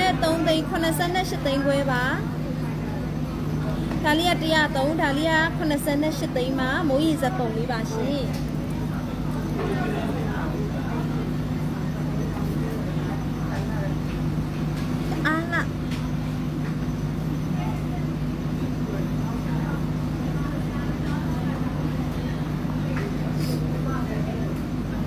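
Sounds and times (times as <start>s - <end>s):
indistinct talking: 0.0s - 25.0s
steady low hum: 0.0s - 25.0s.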